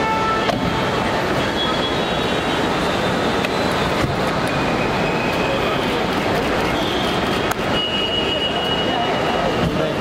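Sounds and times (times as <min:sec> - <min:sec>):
traffic hum: 0:00.0 - 0:10.0.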